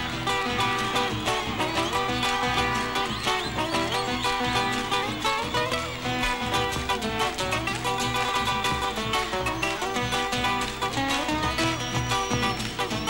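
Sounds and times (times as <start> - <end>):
guitars playing folk music: 0.0 - 13.0.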